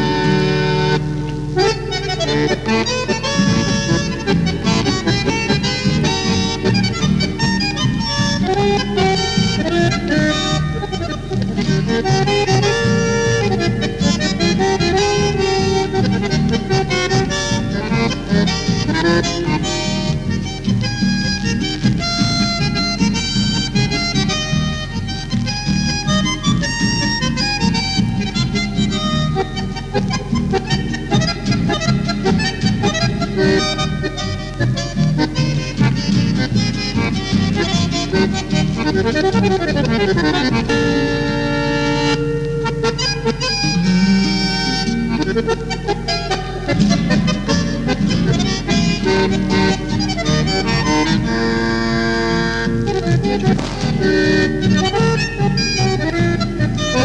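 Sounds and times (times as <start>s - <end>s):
accordion folk music: 0.0s - 57.0s
bass accompaniment: 0.0s - 57.0s.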